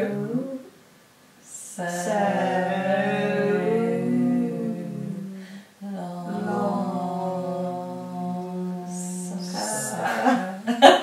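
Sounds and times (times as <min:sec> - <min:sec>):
voices chanting long tones: 0:00.0 - 0:00.7, 0:01.4 - 0:10.8.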